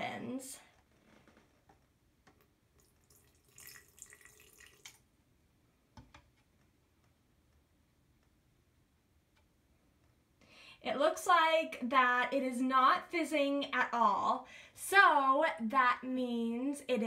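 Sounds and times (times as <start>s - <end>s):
liquid trickling into glass: 2.8s - 5.0s.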